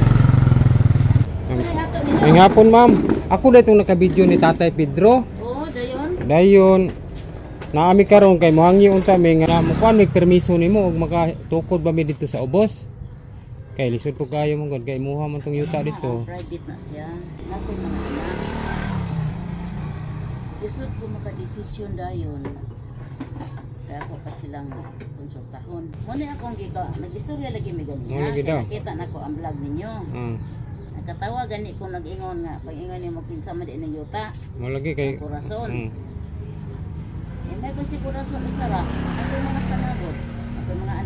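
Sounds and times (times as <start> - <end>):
motor vehicle passing by: 0.0 - 13.6, 15.4 - 41.0.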